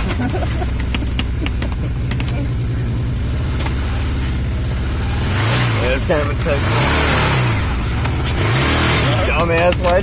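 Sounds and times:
off-road vehicle engine revving: 0.0 - 10.0
vegetation scraping along vehicle: 3.2 - 10.0.

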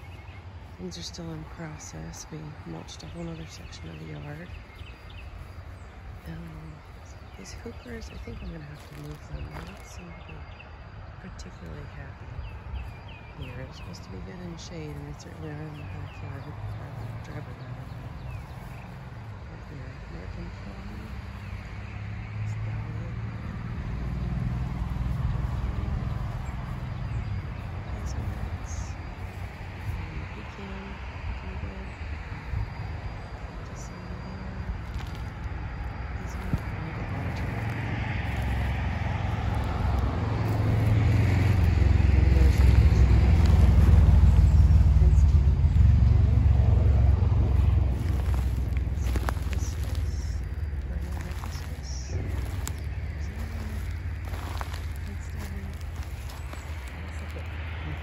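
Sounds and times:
car passing: 0.0 - 58.0
steady low rumble: 0.0 - 58.0.

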